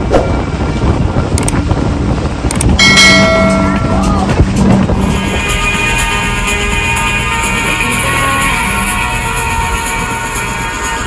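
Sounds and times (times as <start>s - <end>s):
low rumble of boat and water: 0.0s - 11.0s
wind buffeting microphone: 0.0s - 11.0s
bright ringing tone: 2.8s - 4.3s.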